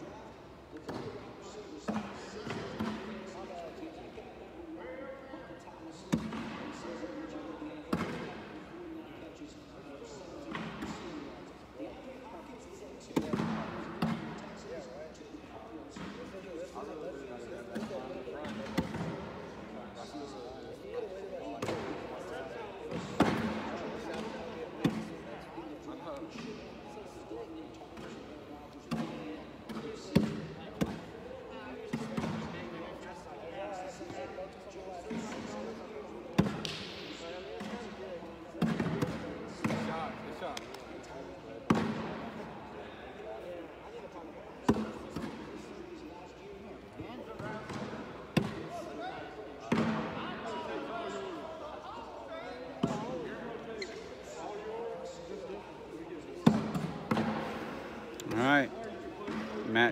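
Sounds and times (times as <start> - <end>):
background chatter: 0.0 - 59.9.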